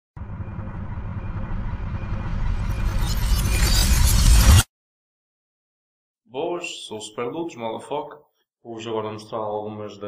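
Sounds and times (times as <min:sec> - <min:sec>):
deep rumbling sound effect: 0:00.2 - 0:04.7.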